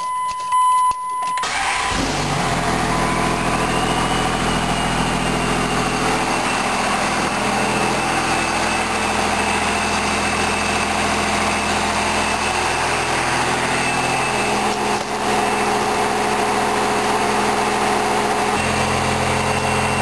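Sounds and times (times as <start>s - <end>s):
diesel engine idling: 1.4s - 20.0s.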